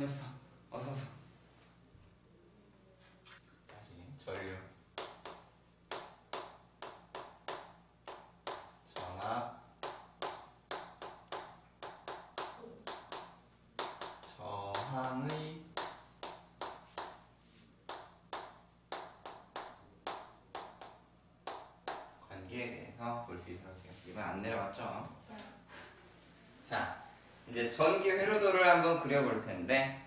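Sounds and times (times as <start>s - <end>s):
chalk tapping and scraping on blackboard: 4.3s - 22.2s.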